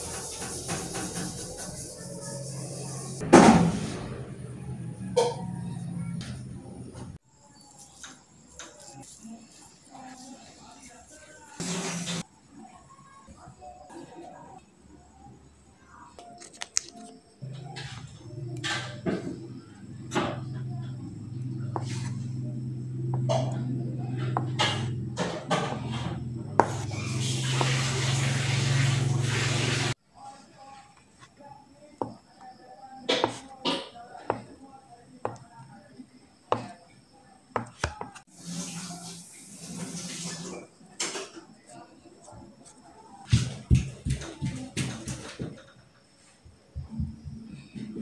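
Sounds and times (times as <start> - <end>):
knife chopping on cutting board: 26.6 - 26.9, 33.1 - 34.5.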